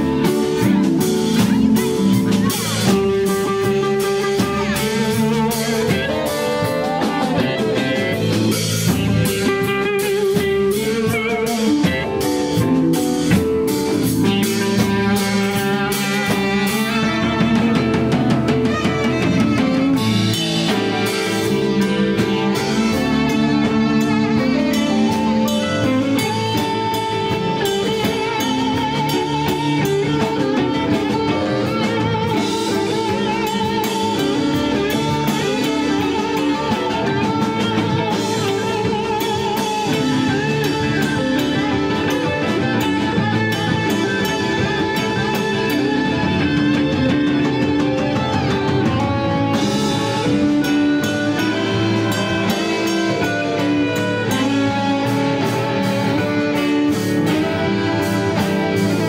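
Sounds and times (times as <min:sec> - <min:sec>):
drum kit with cymbals: 0:00.0 - 0:59.0
electric guitar lead: 0:00.0 - 0:59.0.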